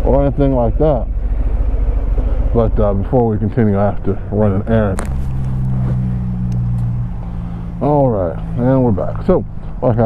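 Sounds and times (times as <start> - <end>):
motorcycle engine running steadily: 0.0 - 10.0.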